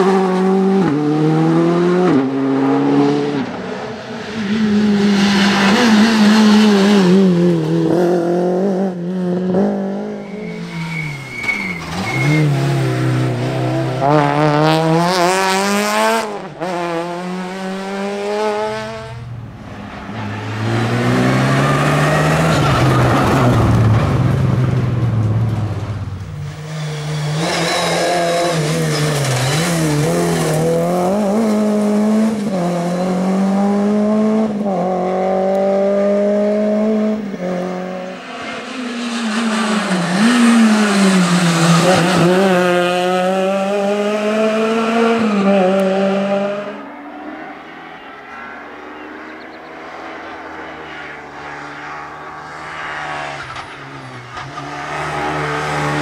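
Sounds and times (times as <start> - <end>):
rally car engines revving: 0.0 - 56.0.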